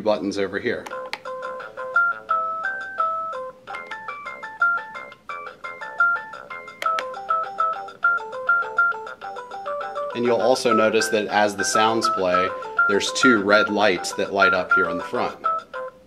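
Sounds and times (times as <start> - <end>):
electronic toy beeping melody: 0.9 - 16.0.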